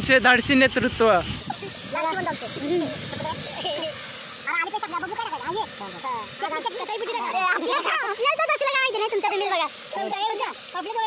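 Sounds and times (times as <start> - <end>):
hot oil sizzling: 0.0 - 11.0
people talking: 0.0 - 11.0.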